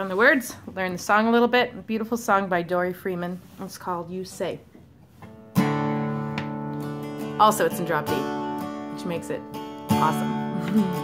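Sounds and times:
acoustic guitar chord strummed: 5.2s - 11.0s.

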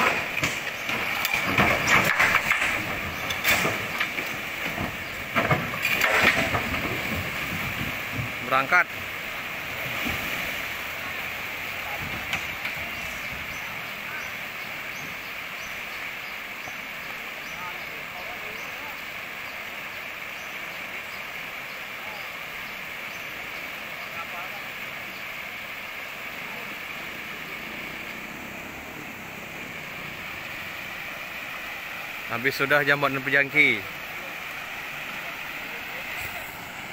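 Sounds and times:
flooded river rushing: 0.0s - 36.9s.

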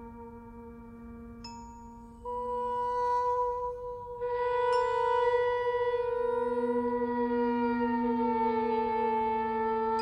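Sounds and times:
soprano saxophone: 0.0s - 10.0s.

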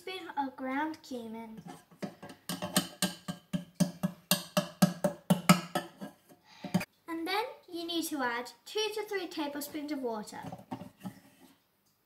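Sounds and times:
spoon tapping on plastic: 1.9s - 6.9s.

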